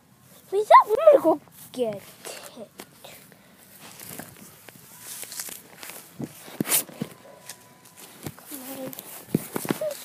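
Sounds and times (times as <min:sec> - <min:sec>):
footsteps and scuffs: 0:01.4 - 0:10.0.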